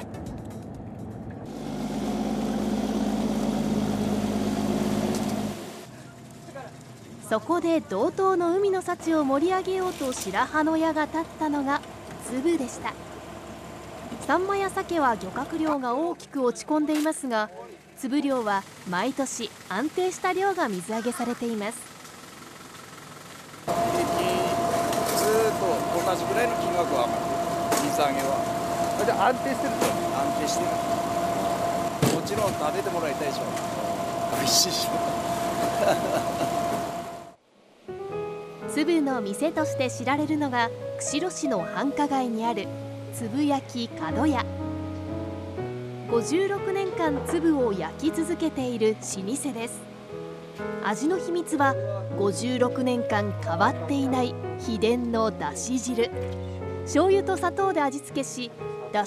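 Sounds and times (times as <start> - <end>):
steady motor drone: 0.0 - 5.9, 9.0 - 15.8, 18.8 - 37.4
fast even machine ticking: 18.6 - 36.2.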